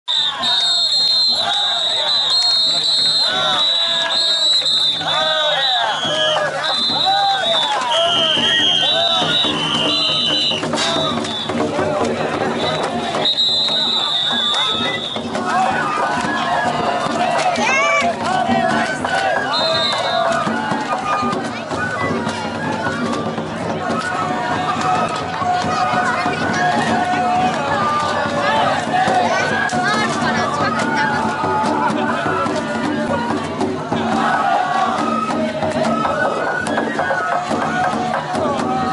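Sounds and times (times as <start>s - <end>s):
high piping flute: 0.1s - 11.7s, 12.4s - 15.5s, 19.3s - 25.9s, 34.8s - 37.9s
crowd shouting together: 0.1s - 38.9s
percussion strikes: 0.2s - 38.9s.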